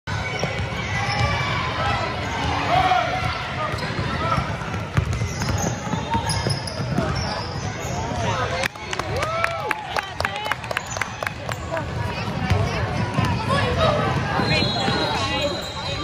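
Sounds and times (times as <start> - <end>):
spectators' voices echoing: 0.1 - 16.0.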